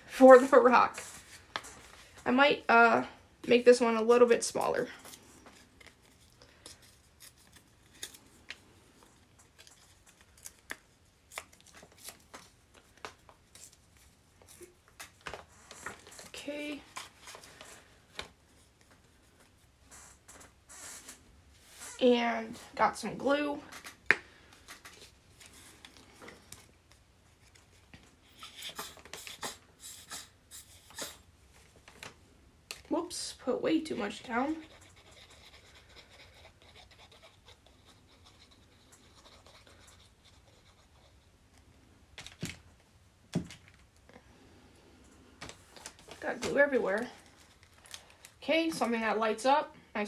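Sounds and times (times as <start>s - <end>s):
paper and stickers rustling: 4.4s - 21.2s.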